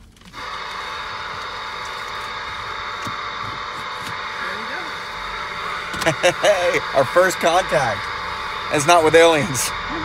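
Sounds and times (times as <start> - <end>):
radio static hiss: 0.2 - 10.0.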